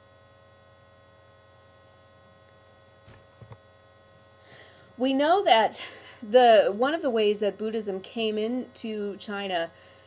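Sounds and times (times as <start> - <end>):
faint mains hum: 0.0 - 10.0.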